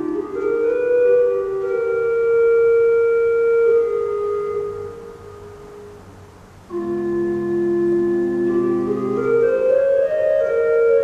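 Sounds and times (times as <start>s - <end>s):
pipe organ chord: 6.7s - 11.0s.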